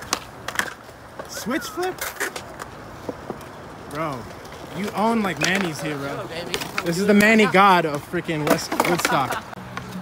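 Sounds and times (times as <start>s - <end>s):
skateboard wheels rolling on concrete: 0.0s - 10.0s.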